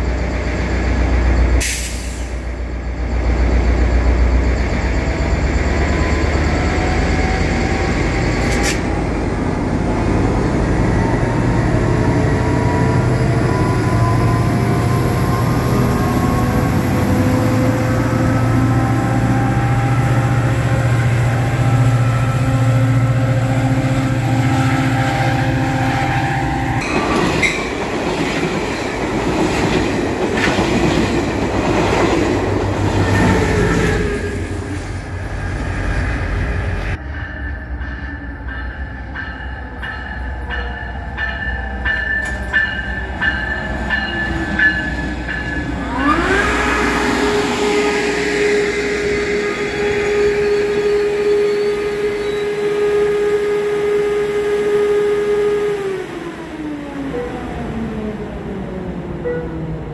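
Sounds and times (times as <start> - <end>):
train rumbling over rails: 0.0 - 59.9
locomotive air horn blast: 45.8 - 56.1.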